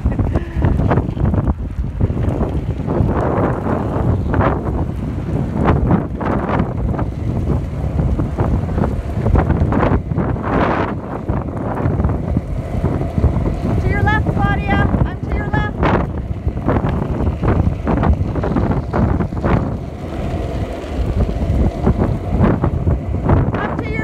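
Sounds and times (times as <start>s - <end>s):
skateboard wheels rolling on asphalt: 0.0s - 24.0s
wind buffeting microphone: 0.0s - 24.0s.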